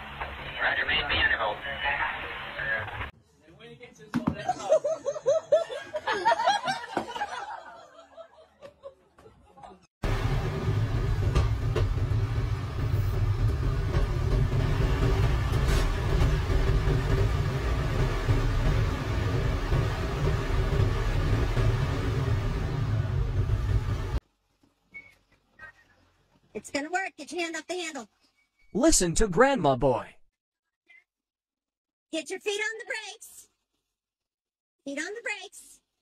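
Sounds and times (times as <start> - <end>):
heavy diesel machinery rumble: 10.0 - 24.2.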